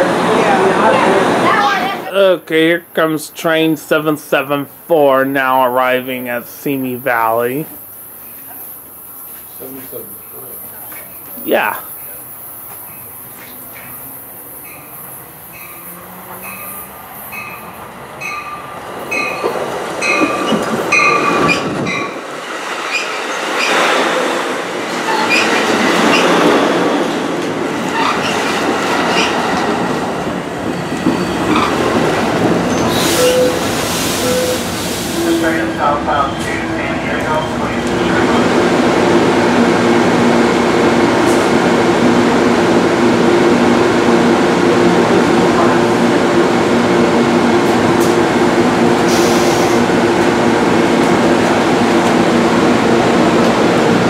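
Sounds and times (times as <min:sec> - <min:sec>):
train wheel and brake noise: 0:12.0 - 0:39.6, 0:40.2 - 0:42.9, 0:47.3 - 0:54.0.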